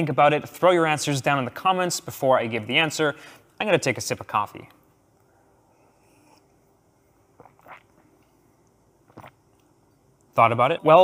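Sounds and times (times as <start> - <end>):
sipping and swallowing coffee: 5.0 - 10.3.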